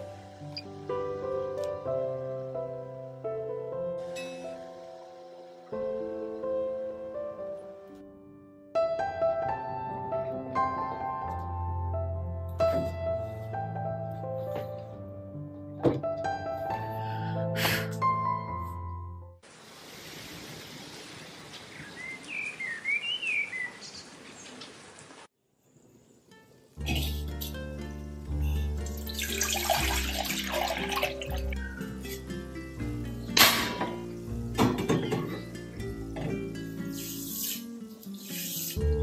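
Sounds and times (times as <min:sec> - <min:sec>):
background music: 0:00.0 - 0:19.4, 0:26.3 - 0:39.0
steady rain: 0:19.4 - 0:22.6, 0:23.3 - 0:25.3
bird chirping: 0:21.6 - 0:24.8.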